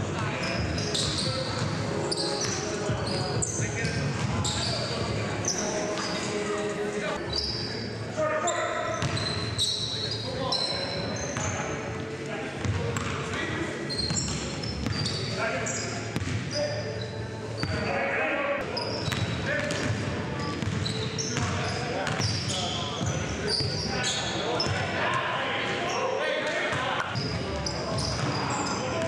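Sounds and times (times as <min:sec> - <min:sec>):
sneaker squeaks: 0:00.0 - 0:11.8, 0:12.6 - 0:13.2, 0:13.8 - 0:18.0, 0:18.6 - 0:24.9, 0:26.7 - 0:29.0
players' voices echoing: 0:00.0 - 0:29.0.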